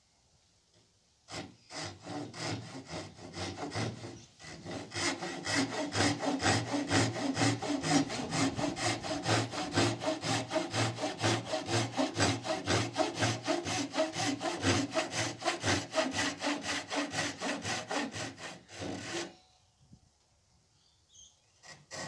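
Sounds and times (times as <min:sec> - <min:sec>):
hand saw cutting wood: 0:01.3 - 0:19.3, 0:21.6 - 0:22.0.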